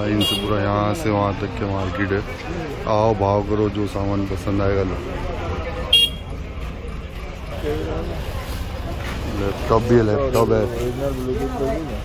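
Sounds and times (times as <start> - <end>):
crowd noise: 0.0 - 12.0
faint voices: 0.0 - 12.0
traffic: 0.0 - 12.0.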